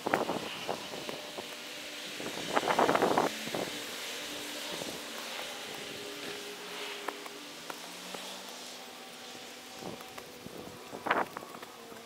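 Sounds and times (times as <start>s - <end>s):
wind noise on microphone: 0.0s - 3.9s, 9.7s - 11.6s.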